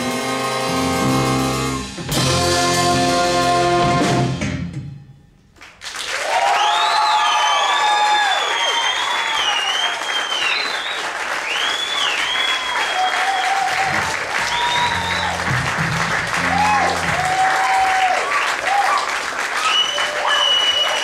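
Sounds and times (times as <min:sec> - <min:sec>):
audience applauding: 0:05.6 - 0:21.0
whistles and cheers: 0:06.0 - 0:15.8, 0:16.4 - 0:21.0.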